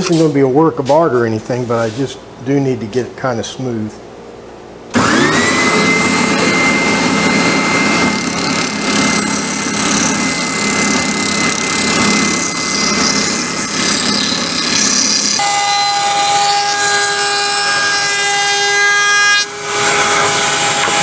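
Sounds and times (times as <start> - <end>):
spindle sander motor whine: 4.9 - 21.0.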